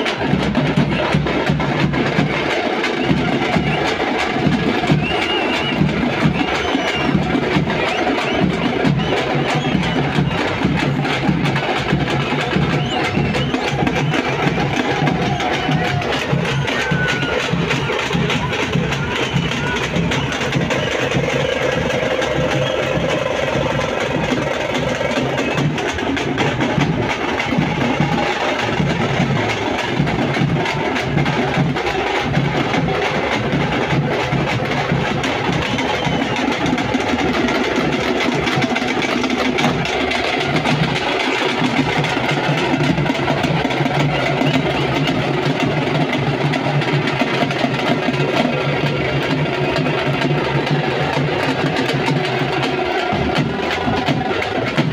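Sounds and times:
frame drums beaten by hand: 0:00.0 - 0:54.9.

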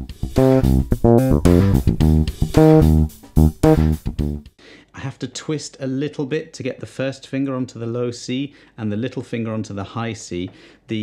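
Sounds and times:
electric bass guitar riff: 0:00.0 - 0:04.4.

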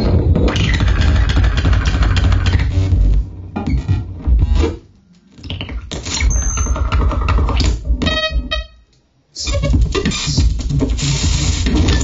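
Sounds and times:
dense electronic crackling: 0:00.1 - 0:04.8, 0:09.4 - 0:12.0.

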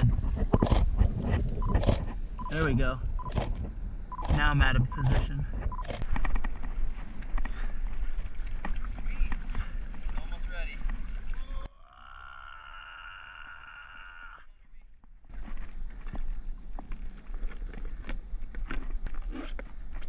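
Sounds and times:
water sloshing around paddleboard: 0:06.1 - 0:11.7, 0:15.3 - 0:20.0.

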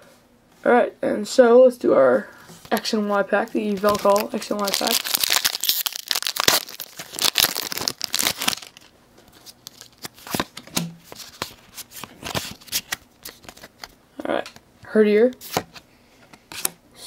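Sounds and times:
foil wrapper crinkling and tearing: 0:03.4 - 0:13.9.

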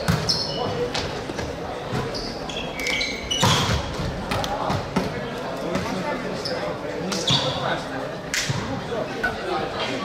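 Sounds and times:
voices around the court: 0:00.0 - 0:10.0.

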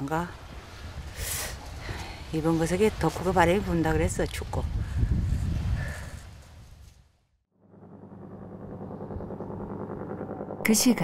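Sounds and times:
steady low hum: 0:07.6 - 0:11.0.

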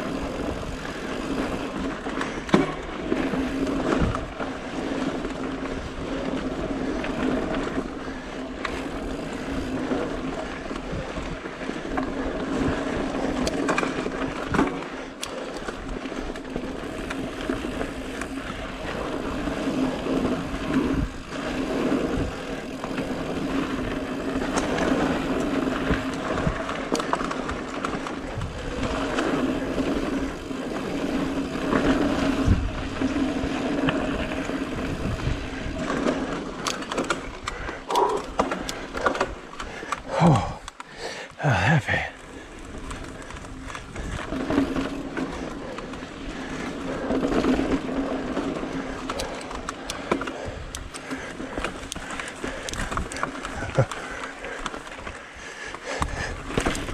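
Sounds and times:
bike rattling and knocking: 0:00.0 - 0:41.3, 0:42.0 - 0:56.9
bike tyres rumbling on dirt: 0:00.0 - 0:56.9.

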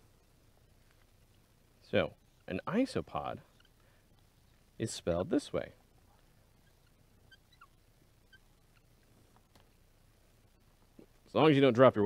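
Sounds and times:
marker squeaking on whiteboard: 0:02.1 - 0:04.8, 0:06.5 - 0:09.1.

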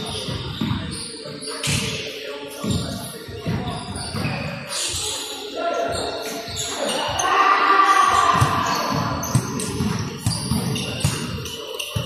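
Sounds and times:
basketball bouncing on wooden floor: 0:00.2 - 0:00.9, 0:08.3 - 0:12.0
players calling out: 0:02.6 - 0:12.0.

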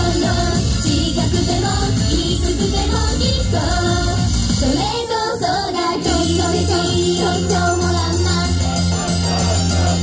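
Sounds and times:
female group singing: 0:00.0 - 0:10.0
pop backing track: 0:00.0 - 0:10.0.

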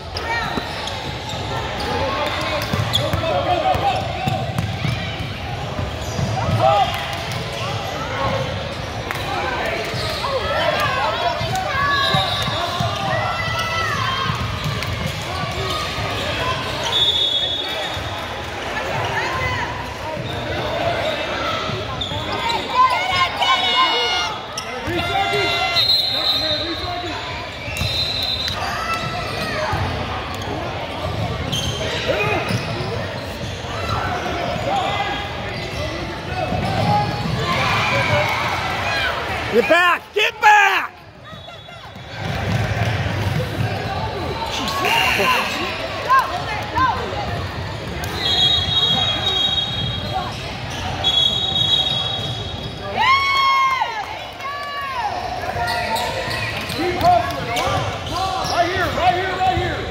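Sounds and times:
sneakers squeaking: 0:00.0 - 0:40.1, 0:40.9 - 0:53.3, 0:55.0 - 0:59.9.

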